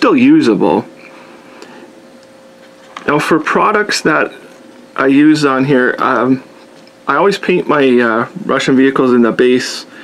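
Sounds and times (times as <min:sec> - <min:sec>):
faint steady hum: 0:00.0 - 0:10.0
low background hiss: 0:00.0 - 0:10.0.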